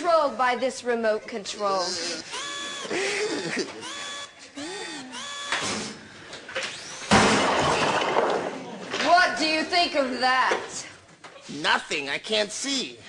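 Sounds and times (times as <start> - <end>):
electronic beeping tones: 2.2 - 5.8
loud hiss of gas: 5.6 - 6.0.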